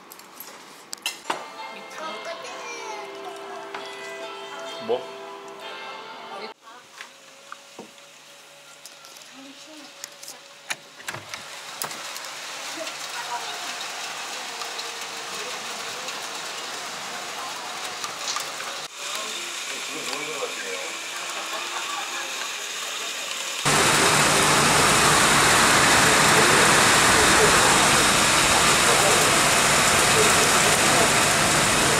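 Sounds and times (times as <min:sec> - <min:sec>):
steady rain falling: 0:11.4 - 0:31.9.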